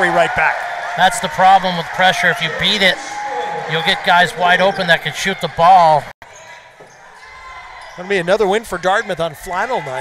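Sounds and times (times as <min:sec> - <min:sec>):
murmur of arena crowd: 0:00.0 - 0:10.0.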